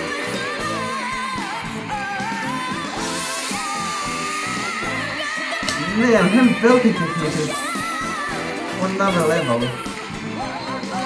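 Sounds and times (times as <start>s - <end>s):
pop band backing track: 0.0s - 11.0s.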